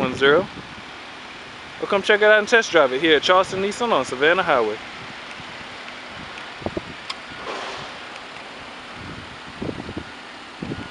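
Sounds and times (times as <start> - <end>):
steady outdoor hiss: 0.0 - 10.9
wind on microphone: 5.0 - 8.2, 8.9 - 10.9
low bumps: 5.4 - 9.9.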